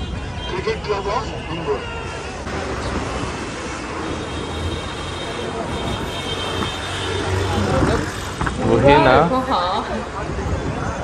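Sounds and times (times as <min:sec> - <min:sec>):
murmur of voices: 0:00.0 - 0:11.0
road traffic rumble: 0:00.0 - 0:11.0.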